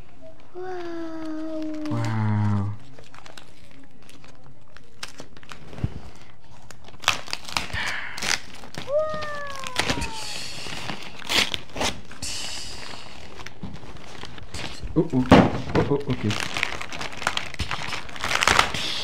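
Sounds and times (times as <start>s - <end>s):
wrapping paper crinkling: 0.0s - 19.0s.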